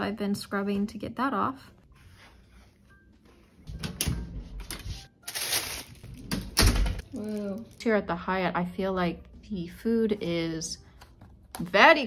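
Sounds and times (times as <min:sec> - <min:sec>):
plastic bag rustling: 0:05.0 - 0:06.3.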